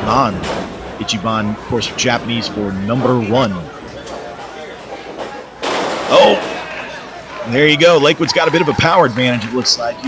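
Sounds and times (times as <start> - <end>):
faint hall noise: 0.0 - 10.0.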